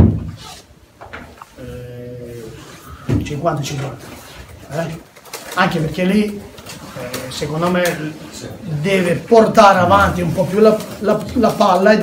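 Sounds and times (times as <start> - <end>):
loud thump: 0.0 - 0.4
man speaking: 1.6 - 12.0.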